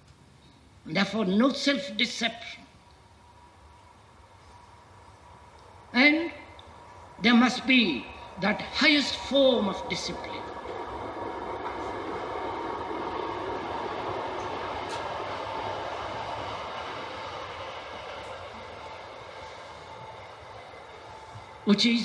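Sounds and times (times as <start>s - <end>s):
vehicle passing: 4.2s - 21.7s.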